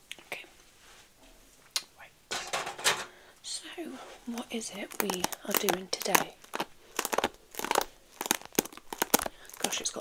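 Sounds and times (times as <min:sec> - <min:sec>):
rustling against microphone: 0:03.9 - 0:10.0
soft speech: 0:09.6 - 0:10.0.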